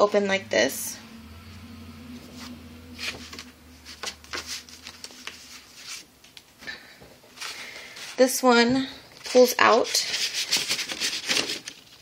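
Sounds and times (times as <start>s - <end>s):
faint steady hum: 0.0s - 9.7s
paper rustles and taps: 10.2s - 12.0s.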